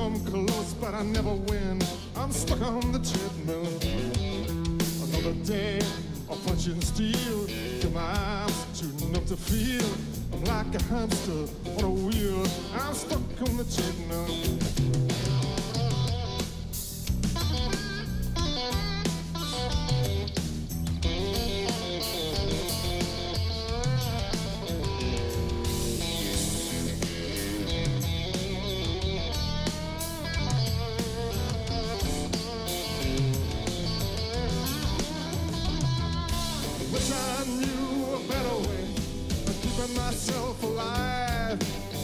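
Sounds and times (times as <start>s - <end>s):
drum kit: 0.0s - 42.0s
electric bass: 0.0s - 42.0s
electric guitar solo: 14.1s - 16.7s, 17.4s - 42.0s.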